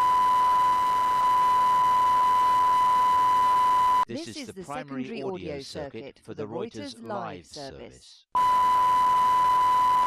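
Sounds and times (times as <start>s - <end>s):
steady test tone beep: 0.0s - 4.1s, 8.4s - 10.0s.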